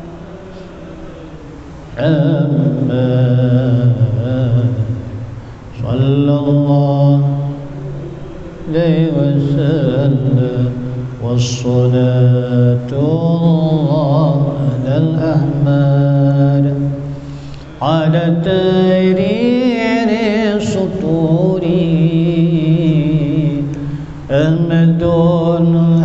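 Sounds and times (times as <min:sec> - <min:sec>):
man chanting into microphone: 0:00.0 - 0:26.0.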